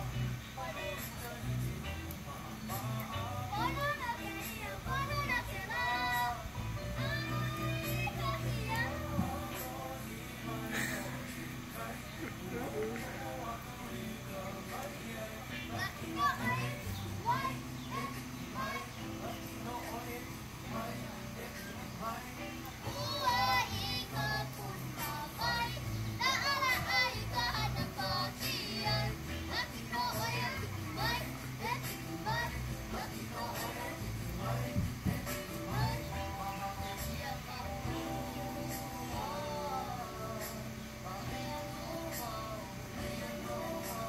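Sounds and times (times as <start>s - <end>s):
background music: 0.0s - 44.0s
child singing: 0.0s - 44.0s
child speaking or singing: 15.7s - 18.9s.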